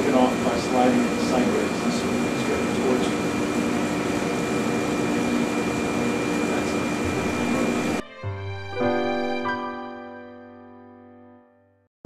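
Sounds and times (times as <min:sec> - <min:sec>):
machinery hum and hiss: 0:00.0 - 0:08.0.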